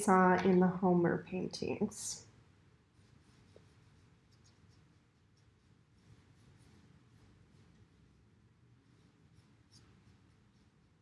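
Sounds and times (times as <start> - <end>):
paintbrush stroking paper: 2.8 - 11.0.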